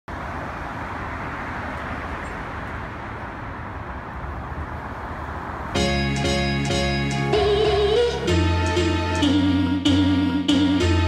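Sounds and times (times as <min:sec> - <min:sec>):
road traffic hiss: 0:00.1 - 0:10.0
music: 0:05.8 - 0:11.0.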